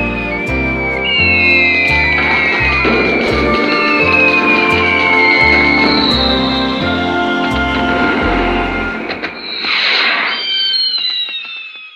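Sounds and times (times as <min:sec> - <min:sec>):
firework crackles: 0:00.0 - 0:11.9
firework whistling: 0:00.0 - 0:11.9
firework rushing burst: 0:01.0 - 0:11.9.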